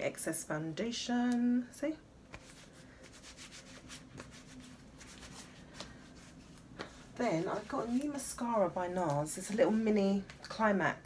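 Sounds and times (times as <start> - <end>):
face wipe scratching skin: 2.3 - 8.2.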